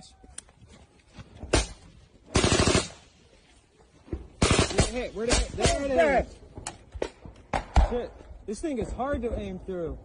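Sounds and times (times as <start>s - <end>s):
automatic gunfire: 2.3s - 3.0s, 4.4s - 6.0s.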